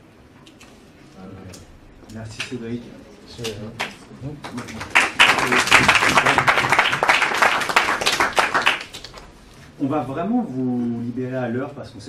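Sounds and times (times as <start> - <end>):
audience applauding: 3.8 - 9.3.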